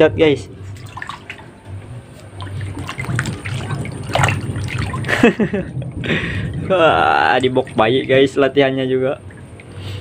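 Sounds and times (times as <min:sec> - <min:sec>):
otter splashing in water: 0:00.8 - 0:01.5, 0:02.4 - 0:05.2.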